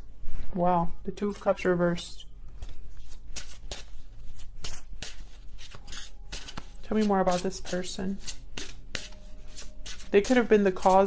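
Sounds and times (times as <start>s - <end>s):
cards being shuffled: 2.4s - 11.0s.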